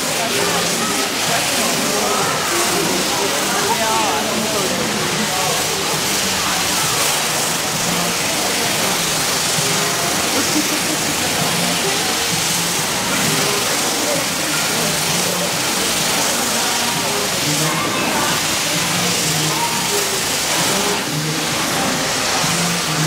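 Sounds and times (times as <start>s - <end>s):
people talking: 0.0s - 23.0s
water hose hissing: 0.0s - 23.0s.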